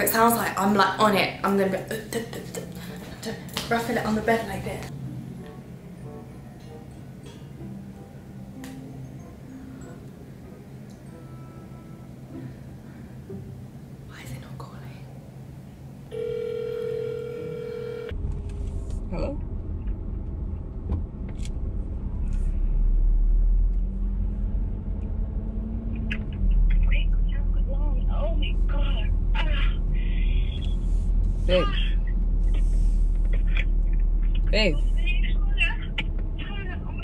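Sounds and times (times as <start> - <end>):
phone ringback tone: 16.1 - 18.2.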